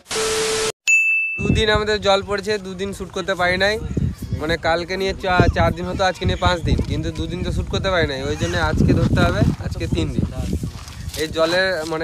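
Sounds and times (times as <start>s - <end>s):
man speaking: 11.2s - 12.0s.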